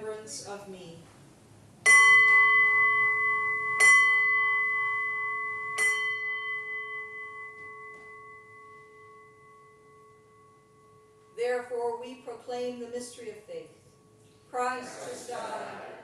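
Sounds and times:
small bell ringing: 1.9 - 11.4.

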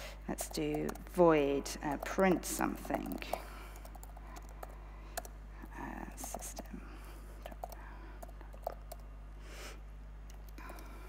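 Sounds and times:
low mains hum: 0.0 - 11.0.

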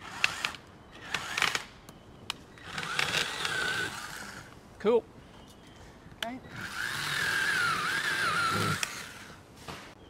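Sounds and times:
power saw cutting branch: 2.6 - 4.5, 6.5 - 9.4.

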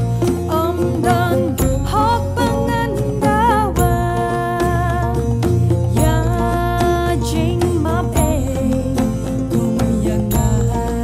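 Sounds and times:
instrumental accompaniment with beat: 0.0 - 11.0
woman singing: 0.0 - 11.0.

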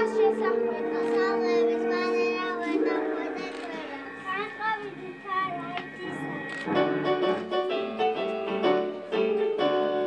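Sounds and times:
children singing: 0.0 - 6.3
backing music: 0.0 - 10.0.

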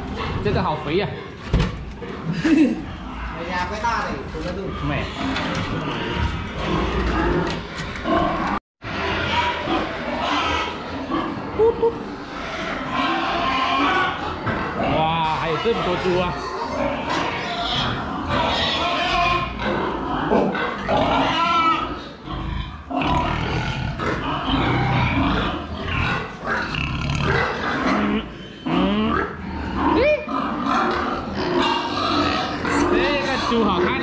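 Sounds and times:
pigs grunting: 0.0 - 34.0
pigs squealing: 0.0 - 34.0.

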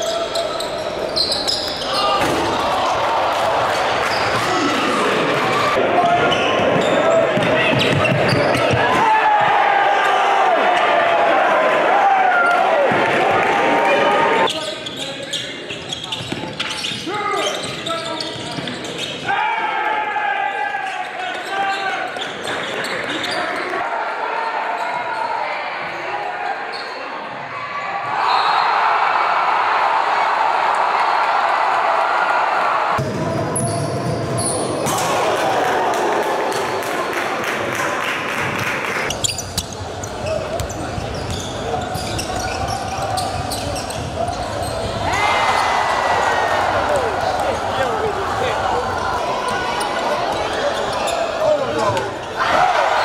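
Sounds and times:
crowd voices and shouts: 0.0 - 53.0
basketball bouncing on court: 7.4 - 8.8, 38.4 - 45.1.

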